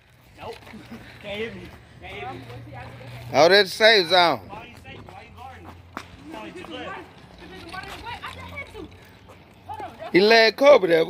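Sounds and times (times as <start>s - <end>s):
distant voices talking and calling: 0.0s - 11.0s.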